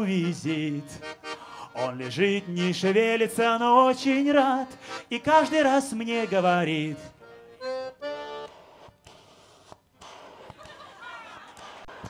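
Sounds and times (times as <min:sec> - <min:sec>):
reedy accordion-like notes: 0:00.0 - 0:09.1.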